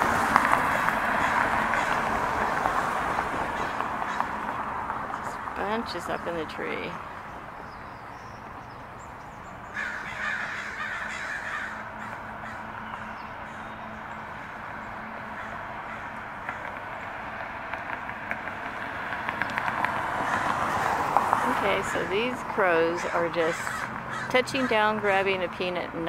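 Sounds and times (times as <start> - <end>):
crows cawing: 0.0 - 4.8, 9.7 - 17.0, 19.8 - 22.3, 22.9 - 24.9.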